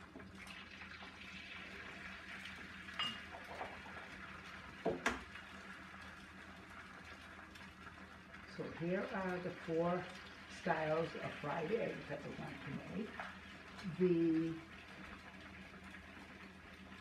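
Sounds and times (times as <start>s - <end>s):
eggs sizzling on a griddle: 0.0s - 17.0s.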